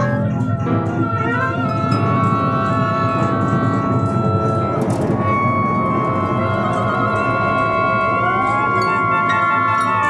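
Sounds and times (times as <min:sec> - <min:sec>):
ensemble of winds double bass and harps: 0:00.0 - 0:10.0.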